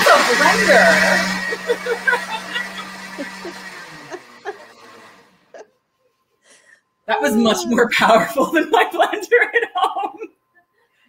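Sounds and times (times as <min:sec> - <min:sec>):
blender motor whir: 0:00.0 - 0:05.6
bursts of laughter: 0:00.0 - 0:05.7.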